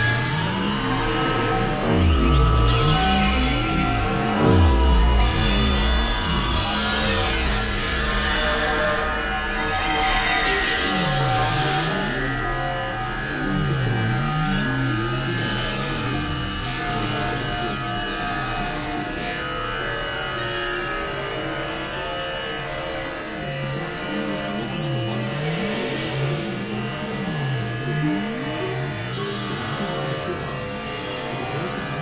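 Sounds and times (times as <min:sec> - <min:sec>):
swooping low synthesizer tones: 0:00.0 - 0:17.6
held synthesizer tones: 0:00.2 - 0:08.5.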